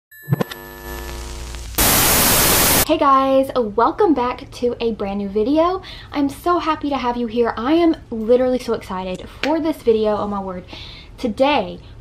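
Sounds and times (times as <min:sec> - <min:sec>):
buzzing hum with steady tones: 0:00.3 - 0:02.9
loud white noise hiss: 0:01.2 - 0:02.8.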